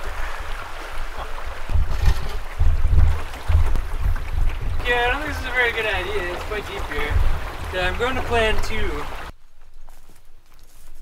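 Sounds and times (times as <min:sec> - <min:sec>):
canoe low rumbling thuds: 0:00.0 - 0:09.3
creek water rushing over rocks: 0:00.0 - 0:09.3.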